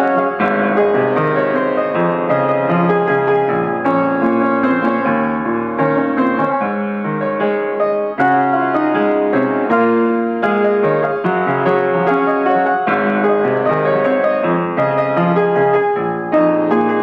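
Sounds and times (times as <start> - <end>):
solo piano playing: 0.0 - 17.0.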